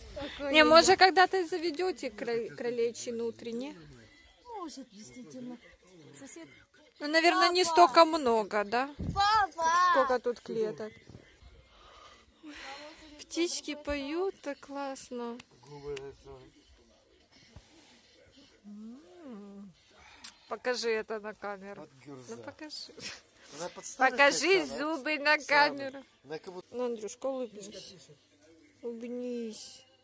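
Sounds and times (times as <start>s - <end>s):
person's quiet voice gliding: 17.4s - 20.1s.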